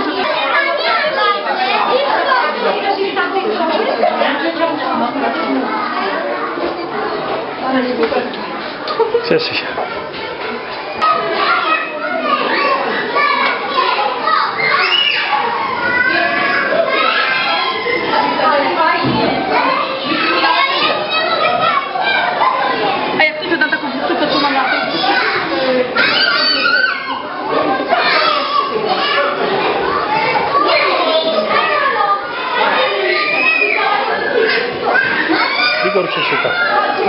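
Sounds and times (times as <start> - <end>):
adults speaking: 0.0 - 37.0
children chattering and calling out: 0.0 - 37.0.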